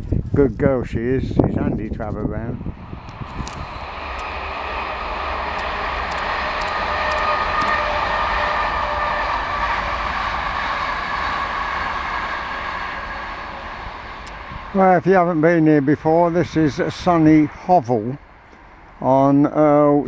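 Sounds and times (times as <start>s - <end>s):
distant train passing: 0.7s - 20.0s.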